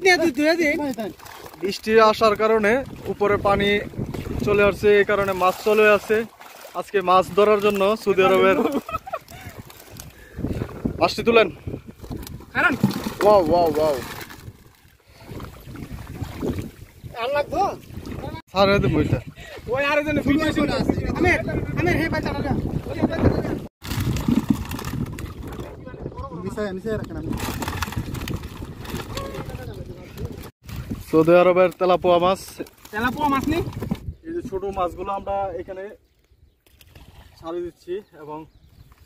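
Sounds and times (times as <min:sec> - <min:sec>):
feet splashing through water: 0:00.8 - 0:04.5, 0:05.1 - 0:10.2, 0:12.6 - 0:17.0
wind buffeting microphone: 0:01.8 - 0:05.4, 0:08.3 - 0:31.2, 0:33.0 - 0:35.7.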